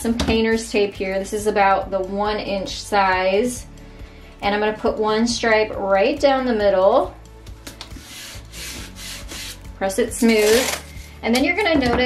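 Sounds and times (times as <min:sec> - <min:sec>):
fingers rubbing tape on wood: 0:07.8 - 0:11.1.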